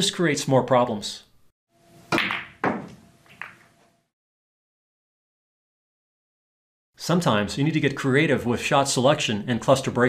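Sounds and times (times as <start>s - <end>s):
pool balls cracking together: 2.1s - 3.7s
cue striking ball: 2.1s - 3.8s.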